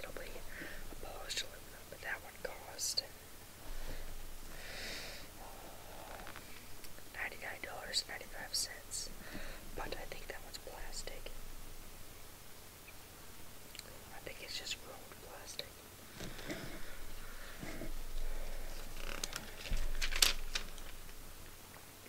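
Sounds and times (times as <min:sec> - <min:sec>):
person whispering: 0:00.0 - 0:03.2, 0:07.0 - 0:11.4, 0:13.8 - 0:15.8.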